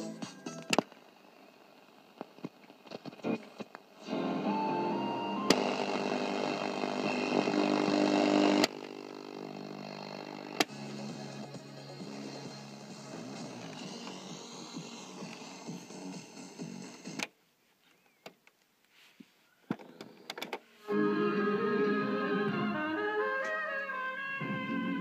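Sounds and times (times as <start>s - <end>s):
music from stereo speakers: 0.0s - 0.8s, 3.2s - 8.3s, 10.0s - 17.2s, 20.8s - 25.0s
radio-cassette click: 0.6s - 1.0s, 2.2s - 3.9s, 5.4s - 10.8s.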